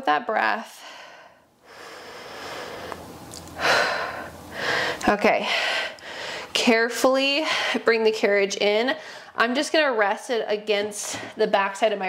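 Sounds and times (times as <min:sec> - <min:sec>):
woman breathing deeply: 0:00.7 - 0:06.6, 0:09.0 - 0:09.4.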